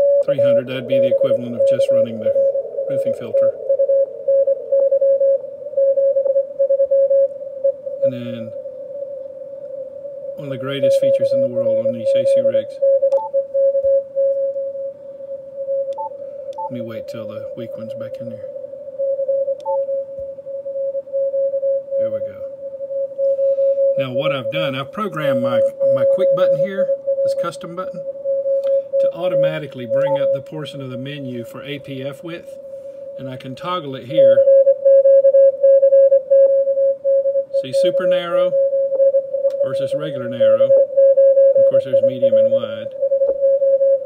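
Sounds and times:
radio background noise: 0.0s - 4.2s, 7.9s - 9.5s, 10.1s - 13.0s, 16.4s - 18.9s, 22.0s - 22.6s, 23.2s - 32.6s, 33.2s - 34.5s, 37.6s - 38.7s, 39.5s - 43.0s
morse code tone: 0.0s - 8.4s, 10.4s - 14.8s, 20.9s - 31.0s, 33.2s - 44.0s.

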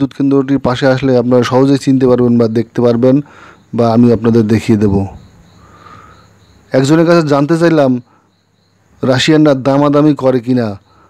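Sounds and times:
man narrating: 0.0s - 5.3s, 6.7s - 8.2s, 9.0s - 10.9s
high-pitched insect chirring: 0.8s - 11.0s.

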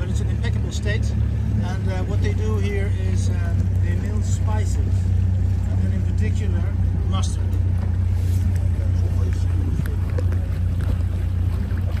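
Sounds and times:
boat motor humming: 0.0s - 12.0s
water washing along hull: 0.0s - 12.0s.

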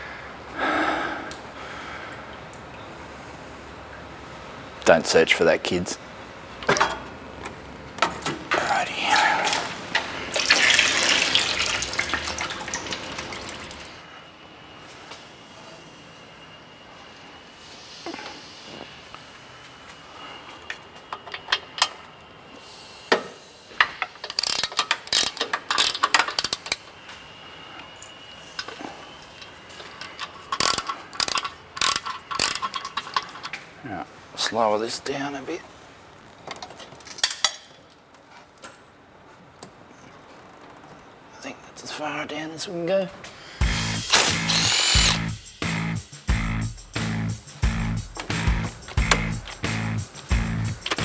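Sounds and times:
hissing splashing rush: 9.0s - 14.0s
hand ratchet clicking: 24.2s - 26.8s, 30.0s - 33.5s, 44.0s - 45.5s, 48.0s - 51.0s.

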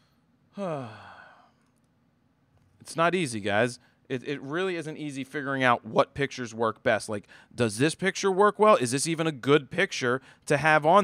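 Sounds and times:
man sighing: 0.5s - 1.5s.

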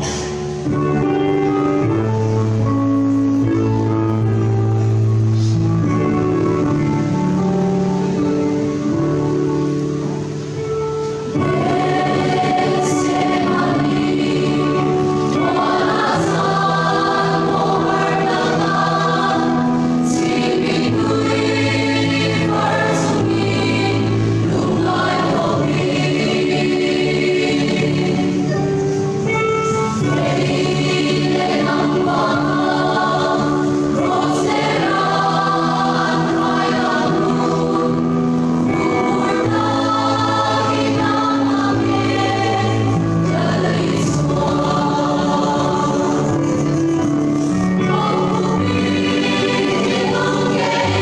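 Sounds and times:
choir singing a hymn: 0.0s - 51.0s.

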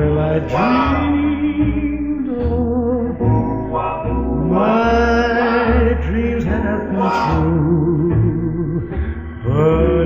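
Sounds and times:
doo-wop vocal harmony record: 0.0s - 10.0s.

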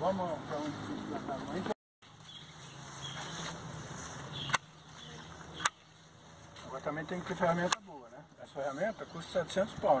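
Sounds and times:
pruning shears snapping shut: 4.5s - 4.7s, 5.6s - 5.8s.

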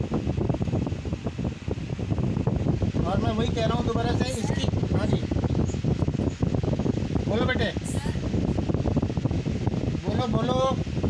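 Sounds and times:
fan air buffeting microphone: 0.0s - 11.0s.

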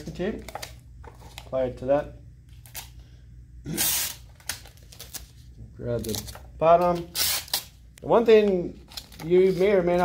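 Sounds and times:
tape ripping: 3.7s - 5.4s, 6.0s - 7.7s.

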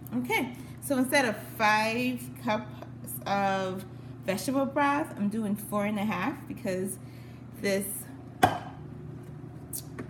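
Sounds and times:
knock on stone countertop: 8.4s - 8.7s.

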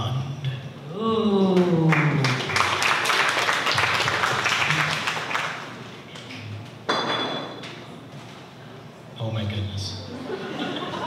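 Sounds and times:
audience applauding: 1.8s - 6.3s.

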